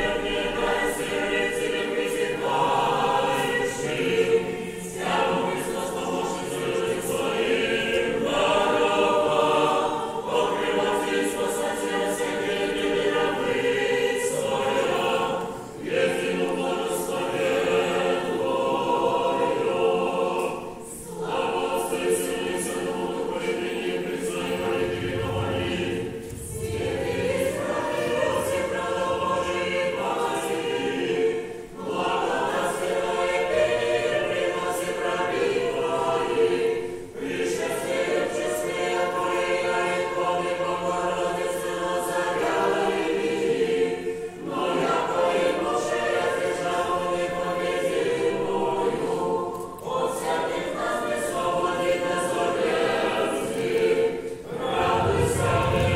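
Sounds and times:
choir chanting a cappella: 0.0 - 55.9.

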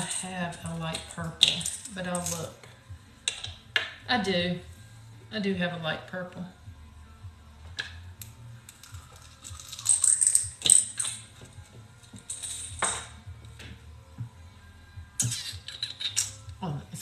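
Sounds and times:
small hard objects clicking and rattling: 8.7 - 11.3.

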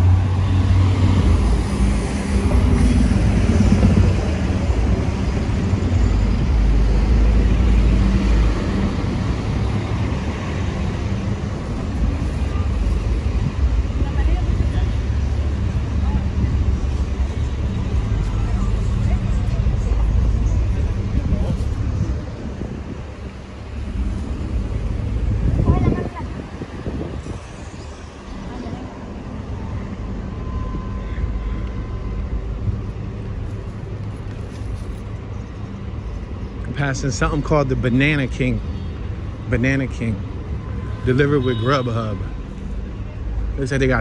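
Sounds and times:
cars and buses passing: 0.0 - 44.0
passersby's voices: 0.0 - 44.0.

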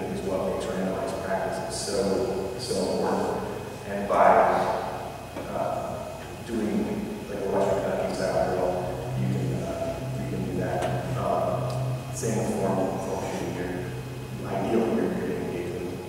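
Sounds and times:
man speaking in echoing gym: 0.0 - 16.0.

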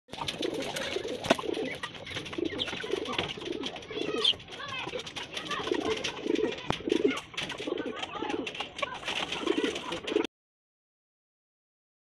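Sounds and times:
pigeons cooing: 0.1 - 10.3.

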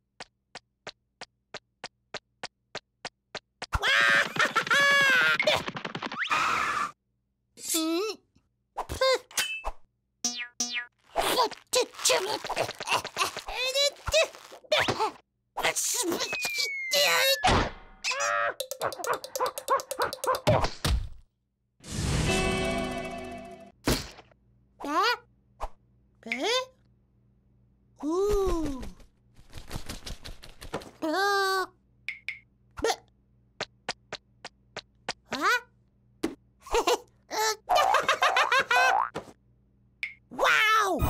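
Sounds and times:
cartoon chick footsteps: 0.2 - 6.6
cartoon chick squeaky cries: 16.2 - 17.5.

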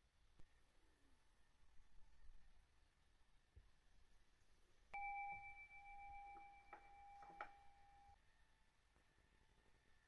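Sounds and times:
altar bell ringing: 5.0 - 8.2.

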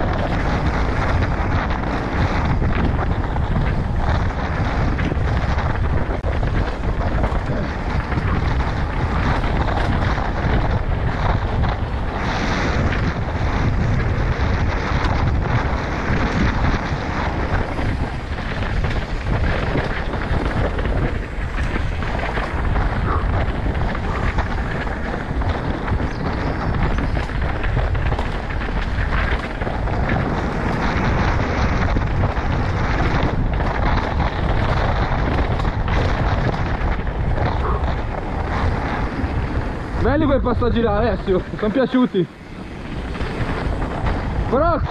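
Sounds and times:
mountain bike rattling on dirt trail: 0.0 - 44.9
wind rushing over microphone: 0.0 - 44.9.

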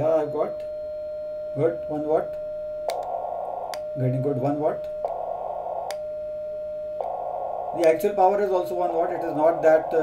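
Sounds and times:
steady sidetone beep: 0.0 - 10.0
click: 2.9 - 3.1.

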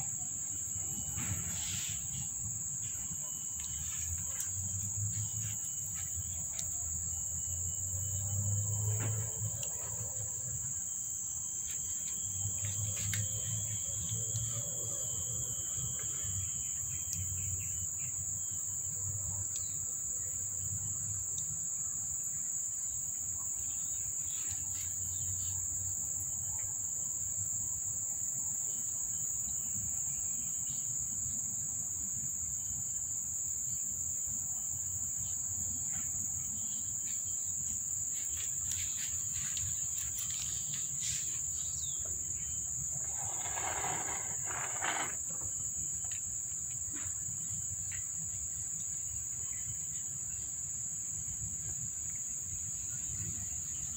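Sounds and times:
insects droning: 0.0 - 53.9.

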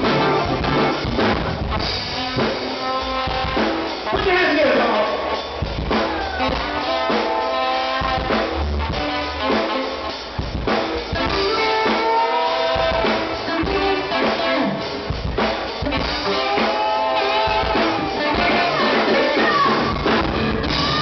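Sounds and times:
drum kit beat: 0.0 - 21.0
trumpet and saxophone horn lines: 0.0 - 21.0.

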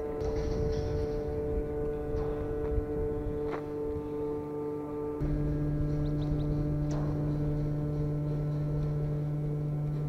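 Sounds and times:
loud machine hum: 0.0 - 10.0.

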